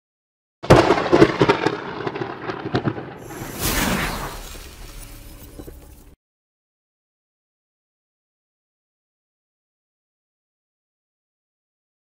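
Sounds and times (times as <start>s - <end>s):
sharp booming hits: 3.2s - 5.4s
whoosh: 3.2s - 6.2s.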